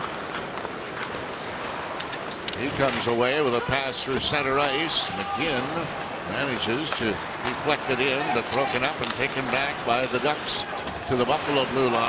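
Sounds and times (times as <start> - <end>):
stick and puck clicks: 0.0 - 3.1, 6.7 - 11.3
arena crowd noise: 0.0 - 12.0
skates scraping on ice: 0.0 - 12.0.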